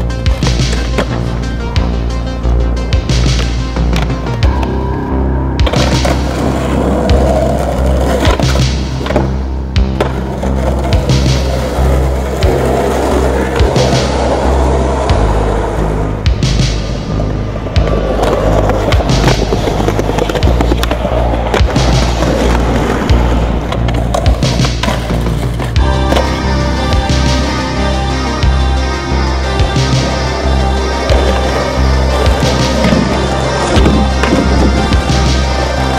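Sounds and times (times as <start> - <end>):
skateboard wheels rolling on concrete: 0.0 - 2.1, 2.9 - 27.9, 29.7 - 35.9
synth music with bass line: 0.0 - 35.9
skateboard popping and landing: 0.4 - 1.2, 3.2 - 4.8, 5.6 - 14.4, 17.7 - 26.4.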